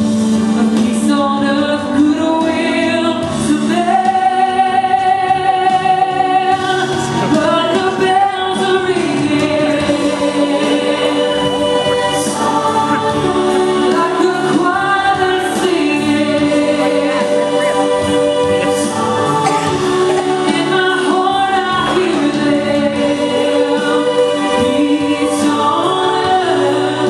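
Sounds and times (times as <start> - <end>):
girls singing together: 7.4 - 27.0.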